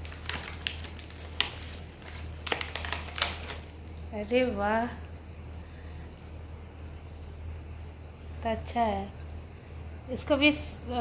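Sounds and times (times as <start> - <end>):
packaging crinkling and crackling: 0.0 - 4.2.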